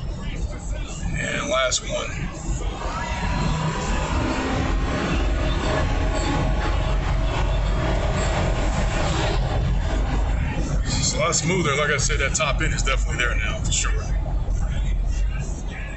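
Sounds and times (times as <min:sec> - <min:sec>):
car engine accelerating: 0:01.2 - 0:13.4.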